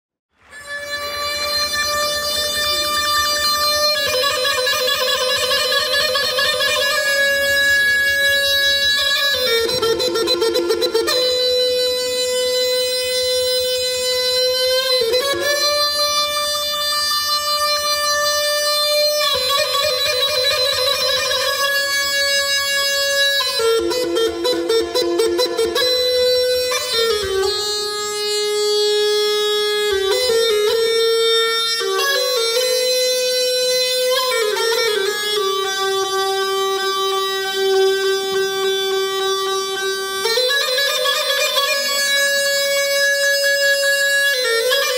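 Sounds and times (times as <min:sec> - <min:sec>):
bagpipe solo melody: 0:00.4 - 0:44.9.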